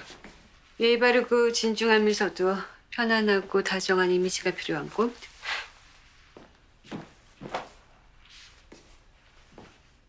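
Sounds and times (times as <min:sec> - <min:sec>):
soft footsteps on floor: 0:00.0 - 0:01.8, 0:04.9 - 0:10.0.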